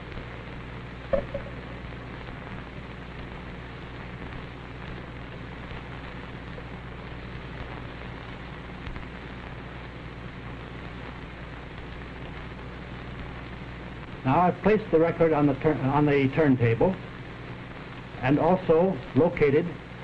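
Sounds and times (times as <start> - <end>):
recording hiss and hum: 0.0 - 20.0.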